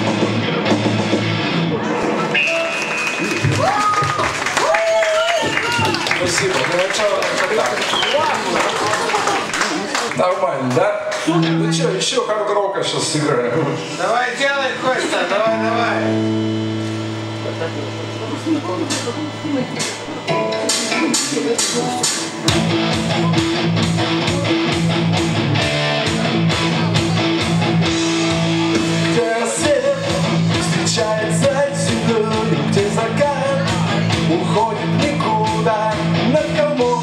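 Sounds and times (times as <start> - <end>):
higher melodic line: 14.6 - 34.3
electric guitar low note ringing: 15.4 - 29.2
steady drum beat: 18.2 - 37.0.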